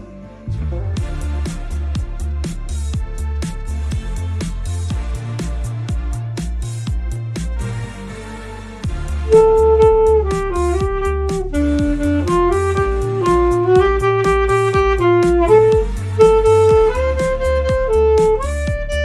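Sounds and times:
backing track with heavy bass: 0.0 - 19.0
alto saxophone melody: 8.9 - 19.0.

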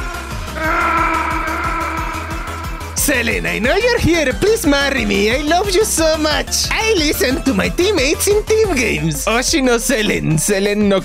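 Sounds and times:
synth music with steady beat: 0.0 - 6.4.

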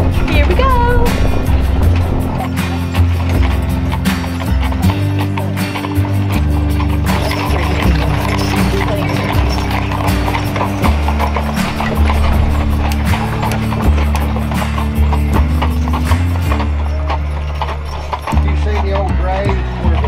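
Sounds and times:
hooves clip-clopping on pavement: 0.0 - 20.0
music with bass line: 0.0 - 20.0.

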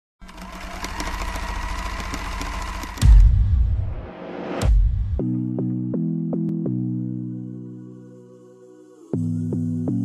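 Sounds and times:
rattling buzzing mechanical drone: 0.2 - 3.3.

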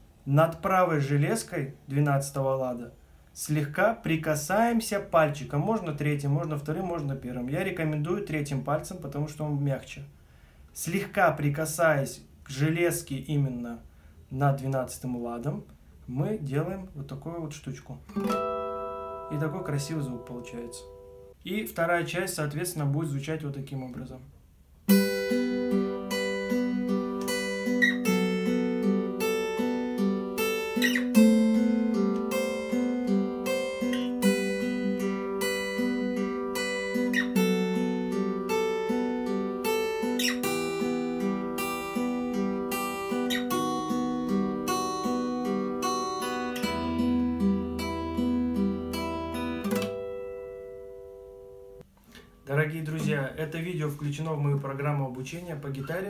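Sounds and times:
acoustic guitar played note by note: 18.1 - 21.3.

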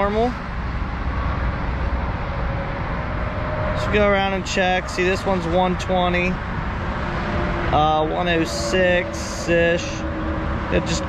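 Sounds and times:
man speaking: 0.0 - 0.4, 3.8 - 6.4, 7.7 - 10.1, 10.7 - 11.0
traffic rumble: 0.0 - 11.0.

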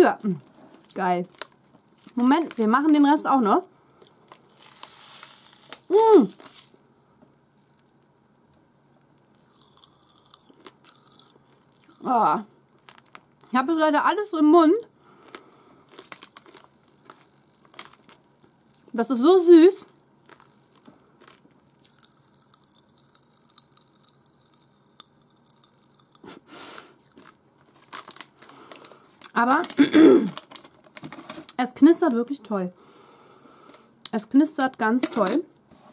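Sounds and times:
popping candy crackling in mouth: 4.0 - 6.7, 9.4 - 13.6, 15.2 - 19.0, 20.2 - 31.6.

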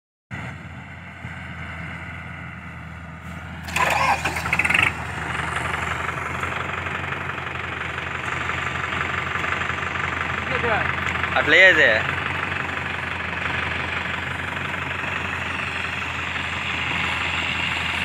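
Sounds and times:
tractor diesel engine idling: 0.4 - 18.0.

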